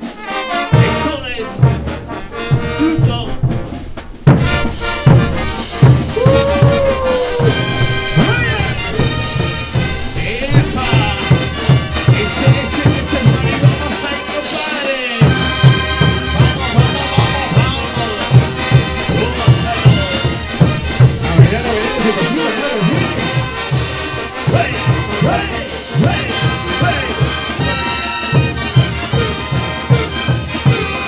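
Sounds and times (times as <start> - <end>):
brass band playing dance tune: 0.0 - 31.0
driving drum beat: 0.0 - 31.0.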